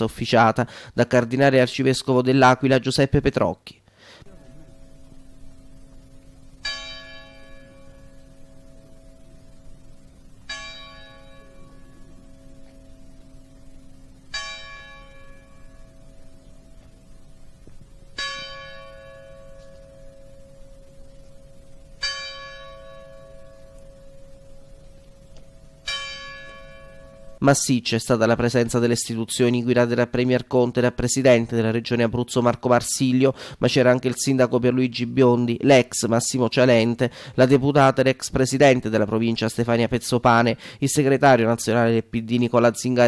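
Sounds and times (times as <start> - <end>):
church bell tolling: 6.4 - 16.7, 18.1 - 24.8, 25.7 - 27.4.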